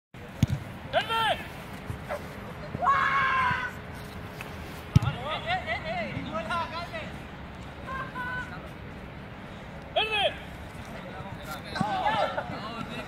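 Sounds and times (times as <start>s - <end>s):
voices shouting: 2.7s - 3.8s, 7.8s - 8.6s.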